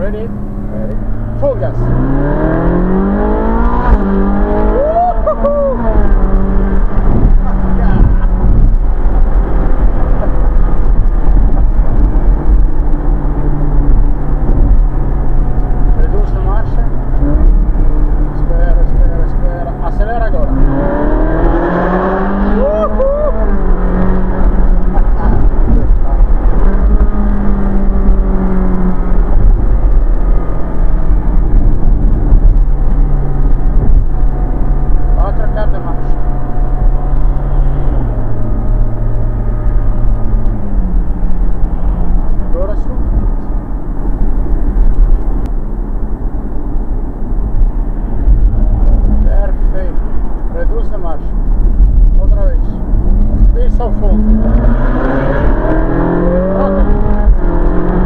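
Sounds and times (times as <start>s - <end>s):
car engine cruising: 0.0s - 58.0s
wind rumble on microphone: 0.0s - 58.0s.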